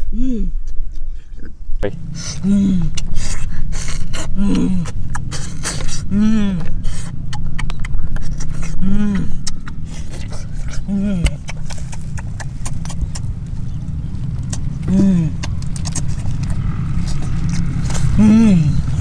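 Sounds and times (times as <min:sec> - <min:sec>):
person humming mm: 0:00.0 - 0:00.7, 0:02.1 - 0:13.3, 0:14.5 - 0:16.1, 0:16.9 - 0:19.0
food being chewed: 0:06.6 - 0:18.2.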